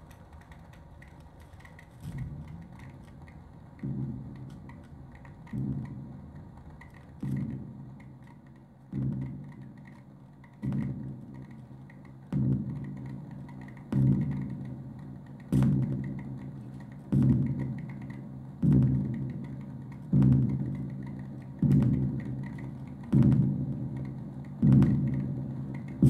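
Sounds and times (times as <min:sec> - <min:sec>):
faint clicks and crackles: 0:00.0 - 0:26.0.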